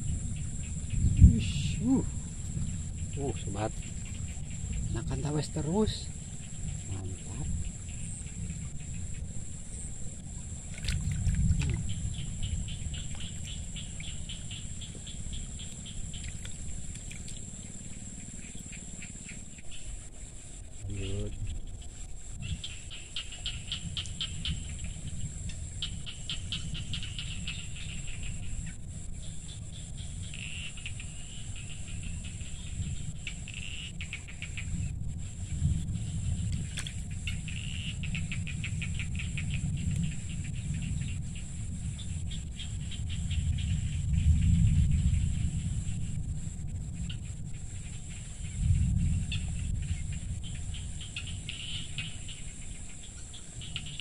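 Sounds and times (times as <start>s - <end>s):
insects buzzy pulsed chirps: 0.0s - 54.0s
low rumble: 0.0s - 54.0s.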